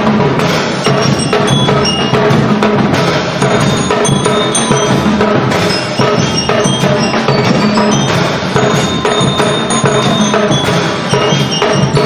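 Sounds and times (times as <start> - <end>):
bass drums: 0.0 - 12.0
snare drums: 0.0 - 12.0
bell lyres melody: 0.9 - 12.0.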